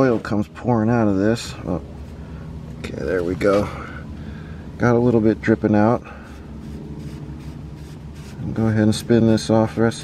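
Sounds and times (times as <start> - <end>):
scratchy rubbing of plastic cap: 6.3 - 8.6.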